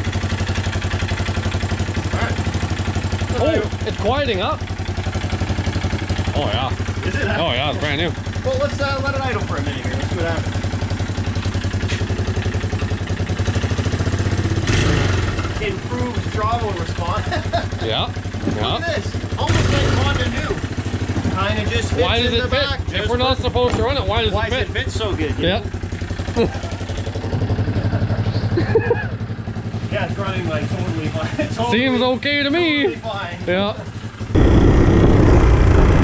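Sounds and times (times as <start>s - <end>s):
engine idling: 0.0s - 36.0s.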